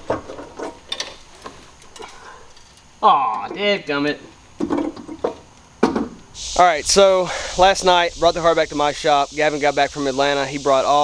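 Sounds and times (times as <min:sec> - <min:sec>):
clicks of hand tools and metal: 0:00.1 - 0:03.5.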